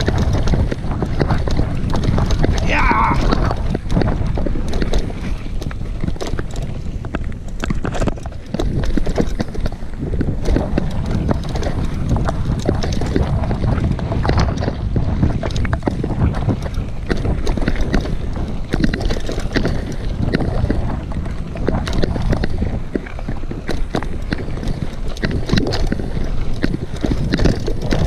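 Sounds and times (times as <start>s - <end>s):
bike rattling over ground: 0.0s - 28.0s
wind on microphone: 0.0s - 28.0s.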